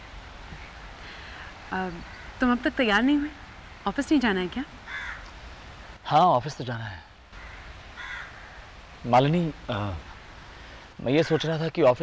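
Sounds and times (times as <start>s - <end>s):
outdoor ambience: 0.0s - 12.0s
crow cawing: 1.1s - 2.7s, 4.8s - 5.4s, 7.3s - 8.8s, 10.0s - 11.6s.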